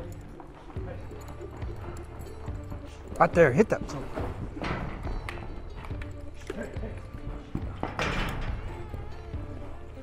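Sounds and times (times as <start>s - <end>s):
background music: 0.0s - 10.0s
horse hoofbeats in dirt: 0.0s - 10.0s.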